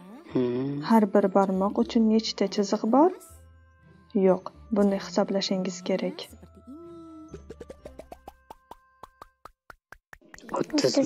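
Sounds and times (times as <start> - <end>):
rising cartoon pops: 7.3 - 11.0.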